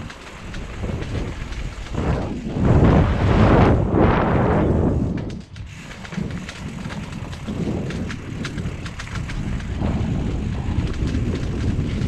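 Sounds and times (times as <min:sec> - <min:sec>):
bike tyres rolling on dirt: 0:00.0 - 0:12.0
wind buffeting microphone: 0:00.0 - 0:12.0.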